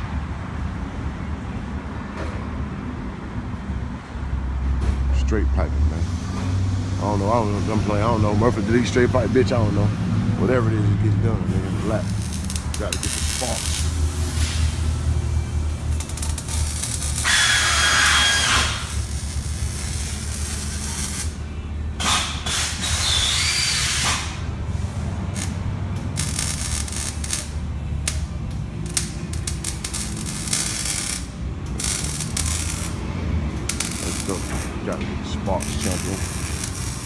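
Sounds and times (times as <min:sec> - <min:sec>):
power tool cutting metal pipe: 0:16.3 - 0:21.0, 0:33.6 - 0:37.0.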